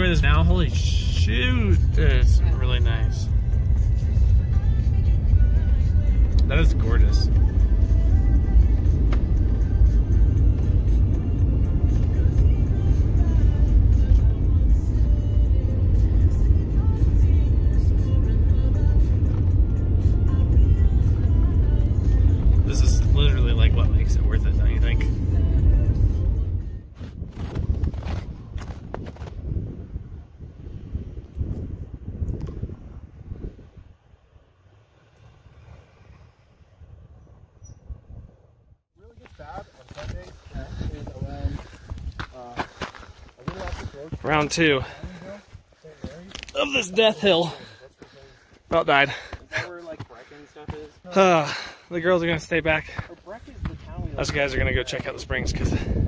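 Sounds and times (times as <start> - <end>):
music playing: 0.0 - 26.8
truck road and engine rumble: 0.0 - 56.0.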